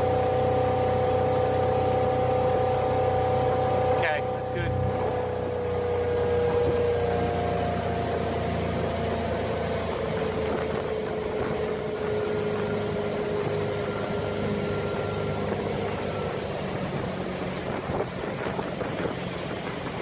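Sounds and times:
boat engine humming: 0:00.0 - 0:20.0
water rushing in wake: 0:00.0 - 0:20.0.

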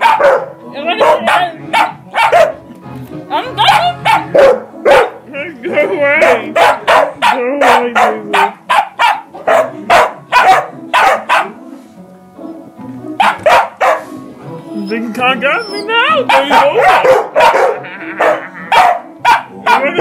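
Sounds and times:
dog barking: 0:00.0 - 0:02.6, 0:03.6 - 0:05.2, 0:06.2 - 0:11.6, 0:13.2 - 0:14.1, 0:16.2 - 0:20.0.

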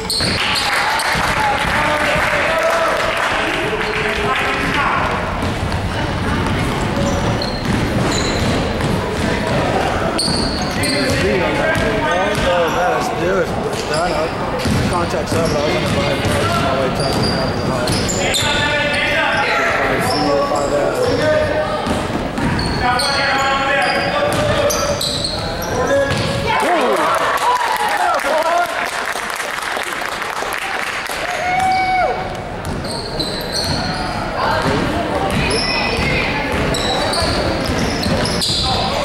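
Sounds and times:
sneakers squeaking on court: 0:00.0 - 0:01.1, 0:05.2 - 0:26.6, 0:32.6 - 0:39.0
voices of players and spectators: 0:00.0 - 0:39.0.

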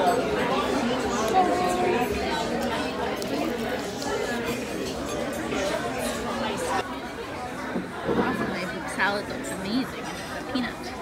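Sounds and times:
chatter of many diners: 0:00.0 - 0:11.0.

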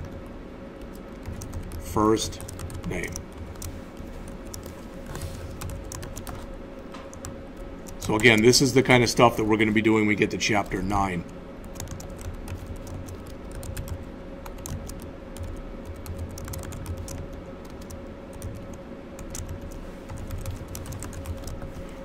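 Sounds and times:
low hum: 0:00.0 - 0:22.0.

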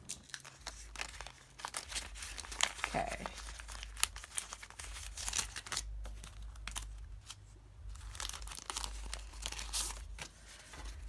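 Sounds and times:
stickers peeled crinkling: 0:00.0 - 0:11.0.

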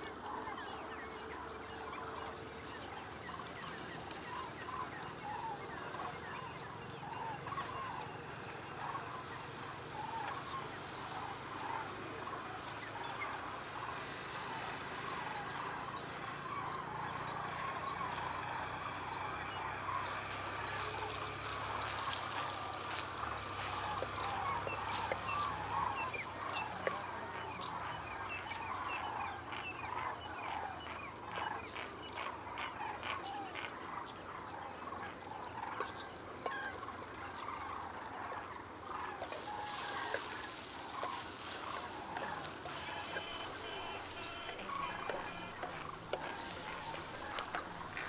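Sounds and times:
birds calling: 0:00.0 - 0:48.0
food sizzling in hot oil: 0:20.0 - 0:32.0, 0:35.2 - 0:48.0.

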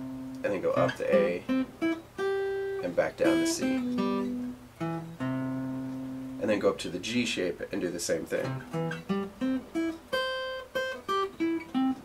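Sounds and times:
acoustic guitar plucked notes: 0:00.0 - 0:07.0, 0:07.6 - 0:12.0.

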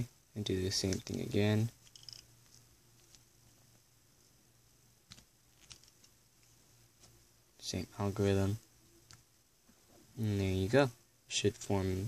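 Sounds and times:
puzzle cube layers clicking: 0:00.8 - 0:03.3.

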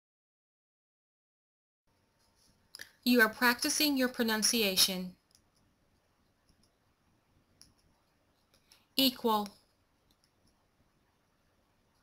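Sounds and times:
faint scattered clicks: 0:05.2 - 0:06.8, 0:07.6 - 0:10.7.

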